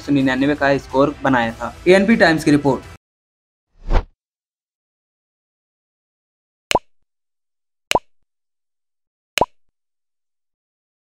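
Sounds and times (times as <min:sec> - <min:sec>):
click-pop sound effects: 0:06.7 - 0:06.9, 0:07.9 - 0:08.2, 0:09.4 - 0:09.7.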